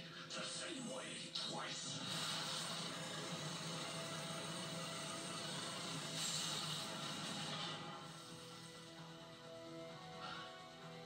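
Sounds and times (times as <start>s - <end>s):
mechanical whirring through tv speaker: 1.4s - 9.3s.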